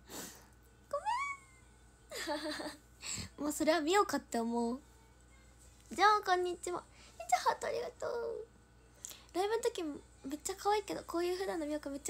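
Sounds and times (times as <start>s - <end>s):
woman squealing: 0.9s - 1.6s.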